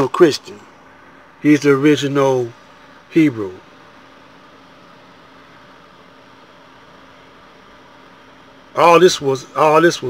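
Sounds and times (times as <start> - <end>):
background hiss: 0.0 - 10.0
faint low hum: 0.0 - 10.0.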